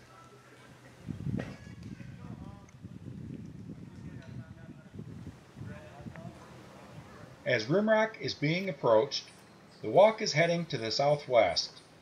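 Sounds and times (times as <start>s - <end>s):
distant human voices: 0.0s - 2.8s.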